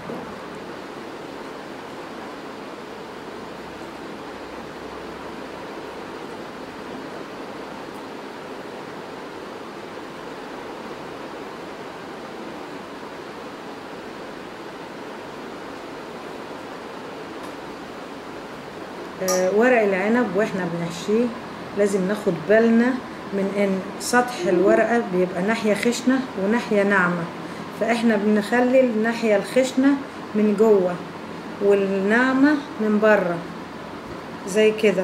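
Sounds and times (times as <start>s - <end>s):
steady background hiss: 0.0s - 35.0s.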